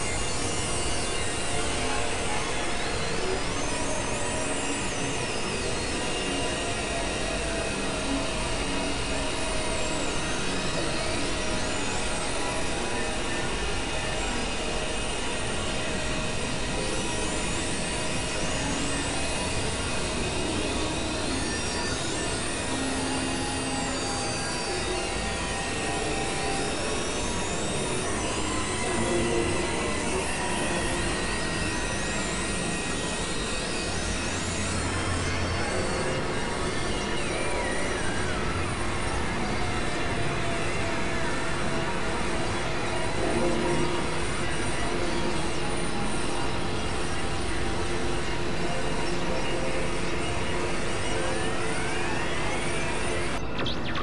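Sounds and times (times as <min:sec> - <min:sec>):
experimental electronic noise music: 0:46.5 - 0:54.0.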